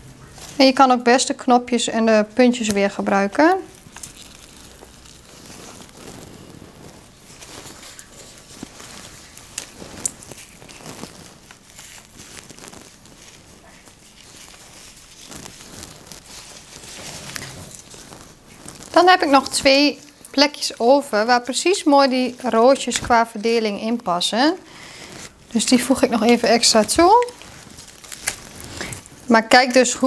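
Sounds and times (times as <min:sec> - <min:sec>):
stems and foliage rustling: 0:00.0 - 0:01.4, 0:02.1 - 0:30.0.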